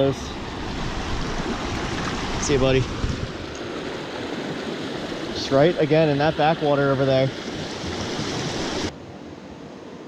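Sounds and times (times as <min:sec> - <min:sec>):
stream rushing over rocks: 0:00.0 - 0:08.9.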